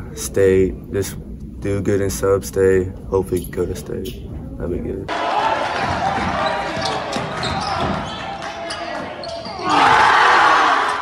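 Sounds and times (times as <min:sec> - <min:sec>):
crowd voices: 0:05.1 - 0:11.0
basketball bouncing on court: 0:05.8 - 0:09.6.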